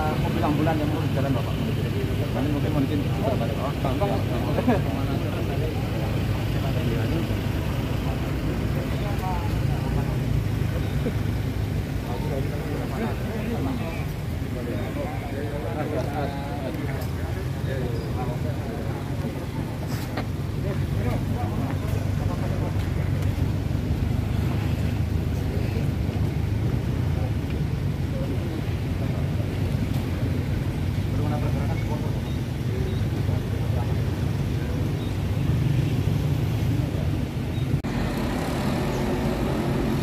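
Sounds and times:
car engine idling: 0.0 - 34.0
crowd voices: 0.0 - 40.0.

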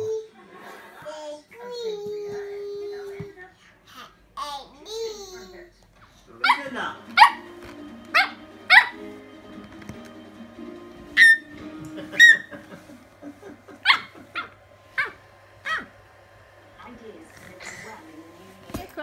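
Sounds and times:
small dog barking: 6.4 - 9.0, 11.2 - 11.5, 13.8 - 15.9.

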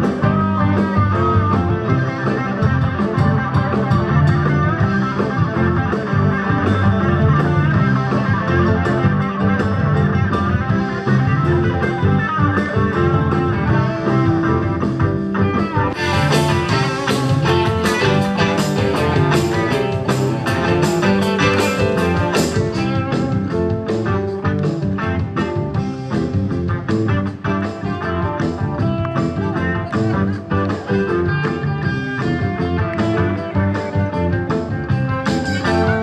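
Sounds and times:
live rock band playing: 0.0 - 36.0.

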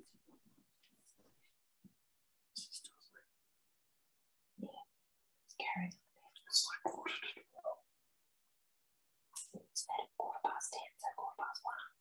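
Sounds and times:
man whispering: 2.6 - 3.4, 5.5 - 7.8, 9.4 - 12.0.

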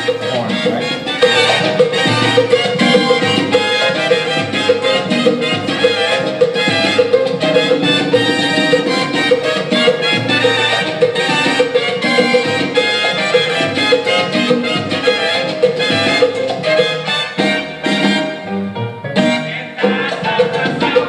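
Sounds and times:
salsa band with percussion: 0.0 - 21.0.

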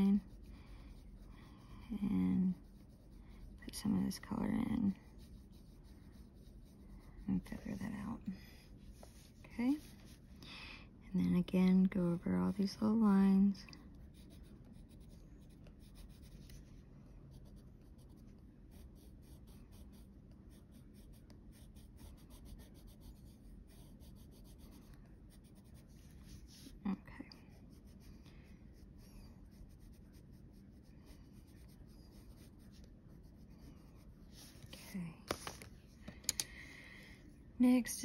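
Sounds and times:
pencil scratching on paper: 0.0 - 10.3, 13.8 - 28.1, 28.7 - 35.7.

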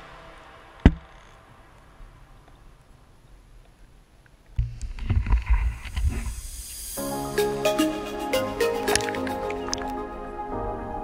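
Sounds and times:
music with clear notes: 7.0 - 11.0.

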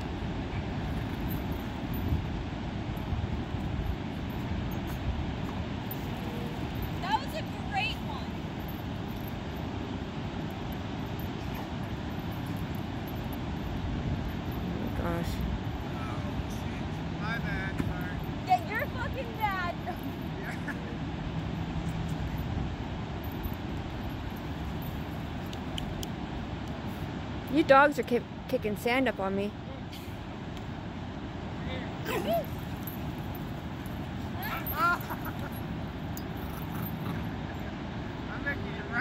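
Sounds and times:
ocean surf rushing: 0.0 - 28.5.

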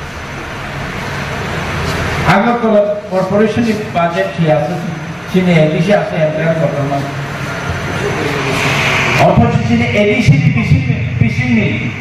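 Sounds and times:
low hum: 0.0 - 12.0
steady rushing noise: 0.0 - 12.0.

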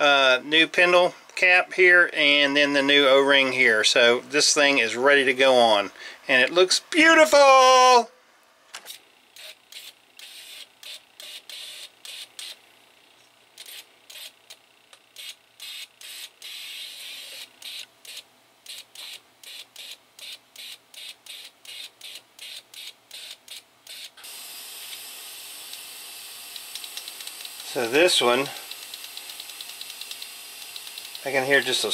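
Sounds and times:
fuel injector spraying hiss: 24.2 - 31.9.

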